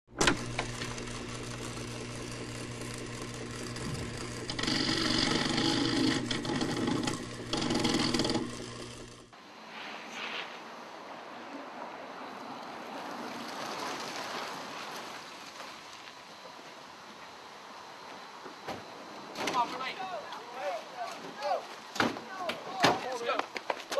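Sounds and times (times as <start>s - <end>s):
buzzing electronic drone: 0.1s - 9.3s
outdoor background hiss: 9.3s - 23.9s.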